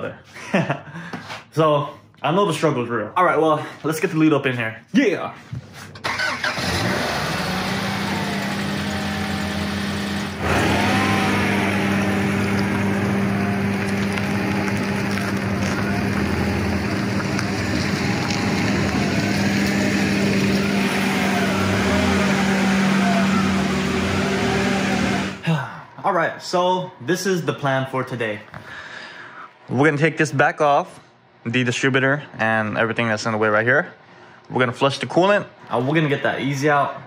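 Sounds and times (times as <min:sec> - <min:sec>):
car engine running and driving off: 0:06.0 - 0:25.4.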